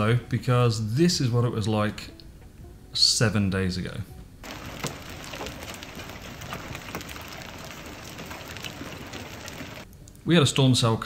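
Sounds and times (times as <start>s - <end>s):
heavy rain hiss: 4.4s - 9.8s
hailstones ticking on hard surfaces: 4.4s - 9.9s.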